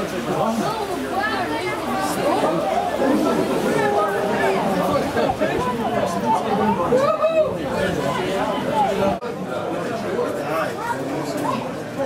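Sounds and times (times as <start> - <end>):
indistinct chatter of spectators: 0.0 - 12.0.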